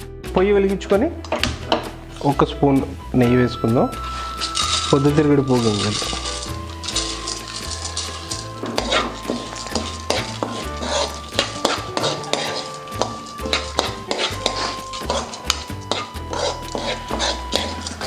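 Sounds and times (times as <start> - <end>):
background music with bass: 0.0 - 18.0
metal spoon scraping a pan: 4.0 - 18.0
seeds rattling in a pan: 4.0 - 18.0.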